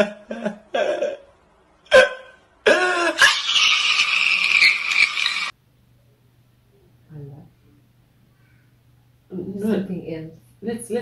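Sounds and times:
man wailing: 1.9 - 3.4.

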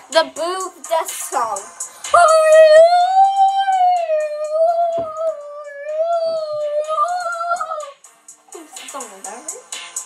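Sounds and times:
girl singing a high held note: 0.1 - 8.0
thump: 4.9 - 5.2.

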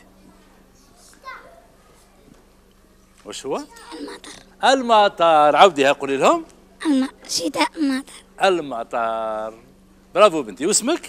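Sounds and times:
low steady hum: 1.8 - 11.0
child calling out: 3.7 - 4.4, 6.8 - 8.2
children chattering: 3.7 - 4.4.

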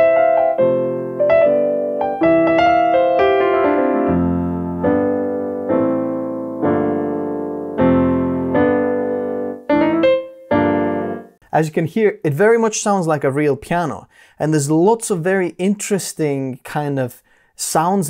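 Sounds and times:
piano playing melody and chords: 0.0 - 11.4.

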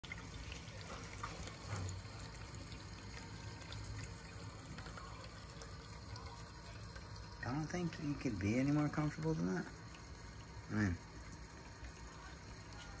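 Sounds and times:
tap water running into sink: 0.0 - 13.0.

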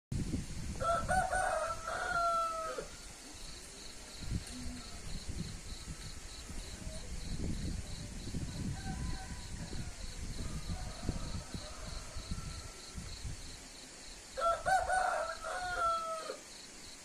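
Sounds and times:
rooster crowing: 0.8 - 3.1, 8.5 - 13.2, 14.4 - 16.5.

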